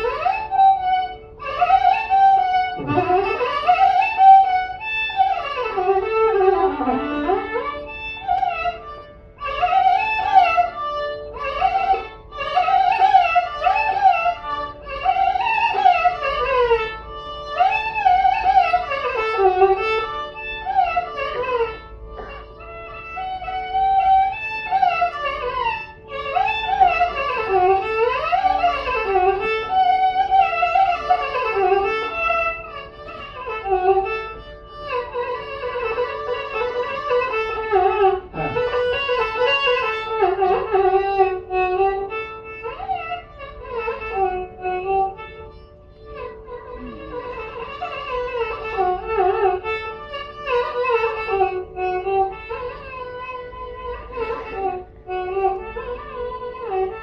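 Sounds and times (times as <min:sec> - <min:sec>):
ornamented melodic line: 0:00.0 - 0:57.0
tambura drone: 0:00.0 - 0:57.0.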